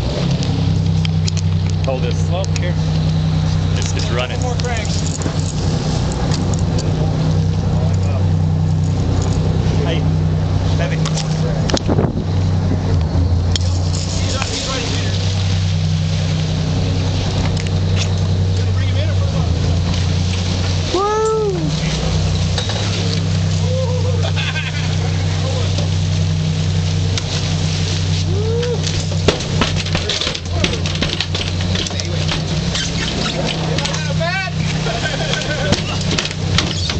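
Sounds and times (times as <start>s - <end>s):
boat engine running: 0.0s - 36.9s
rising and falling cries: 20.9s - 21.8s, 23.5s - 25.4s.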